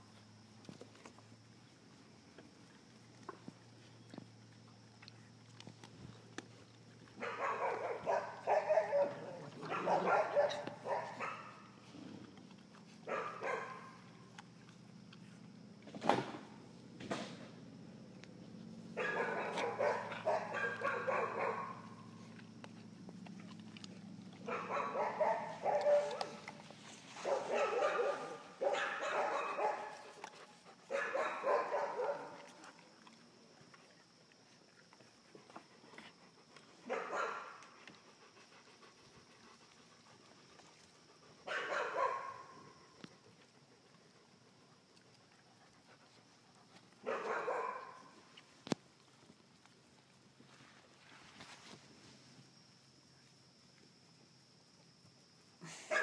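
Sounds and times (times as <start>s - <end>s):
puppies barking: 7.2s - 11.7s, 13.0s - 14.1s, 19.0s - 22.2s, 24.4s - 30.3s, 30.9s - 32.6s, 41.5s - 42.6s, 47.0s - 48.0s.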